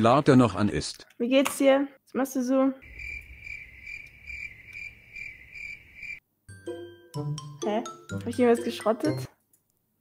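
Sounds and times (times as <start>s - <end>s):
crickets chirping: 2.8s - 6.2s.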